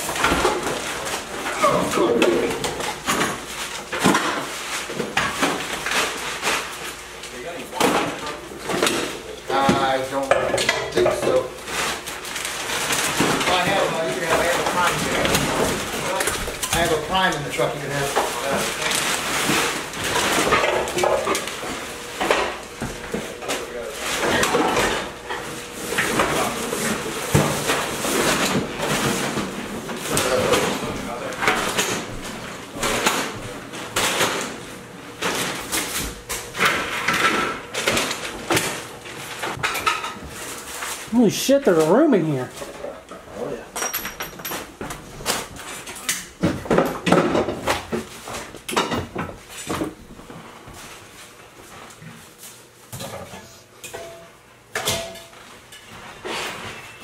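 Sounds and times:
household items clinking and clattering: 0:00.0 - 0:07.1, 0:07.7 - 0:50.0
plastic bags rustling: 0:00.0 - 0:08.3, 0:11.3 - 0:42.6.

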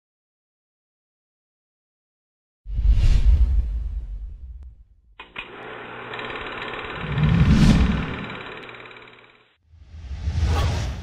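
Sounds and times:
rapid mechanical clatter: 0:05.2 - 0:09.6.

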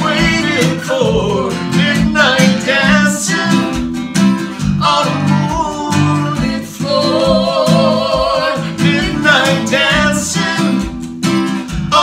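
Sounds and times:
people singing: 0:00.0 - 0:11.2, 0:11.8 - 0:12.0
electric bass: 0:00.0 - 0:12.0
strummed acoustic guitar: 0:00.0 - 0:12.0.

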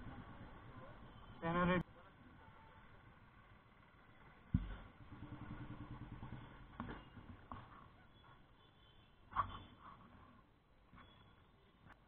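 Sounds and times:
motorcycle engine at low revs: 0:02.8 - 0:08.0
thump: 0:04.5 - 0:04.9.

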